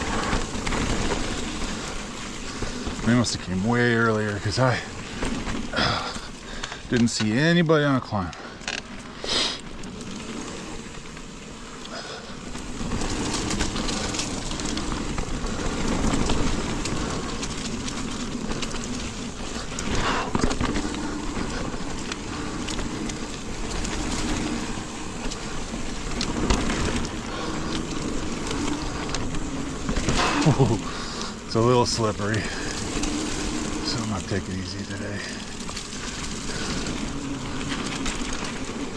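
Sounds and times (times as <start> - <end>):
bike chain rattling: 0.0 - 38.9
bike tyre rumble on dirt trail: 0.0 - 38.9.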